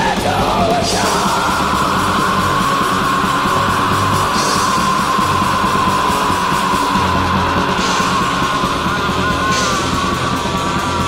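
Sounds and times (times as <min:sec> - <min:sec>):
distorted electric guitars: 0:00.0 - 0:11.0
drums: 0:00.0 - 0:11.0.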